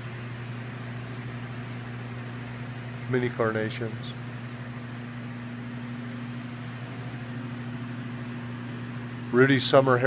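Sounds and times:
refrigeration fans humming: 0.0 - 10.0.

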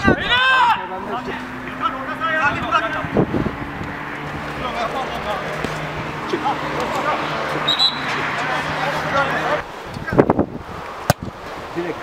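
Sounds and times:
players shouting: 0.0 - 3.0, 4.4 - 9.6.

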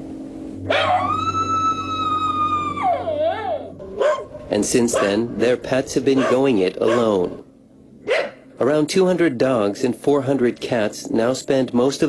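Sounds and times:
dog howling: 0.7 - 5.2, 6.2 - 7.4.

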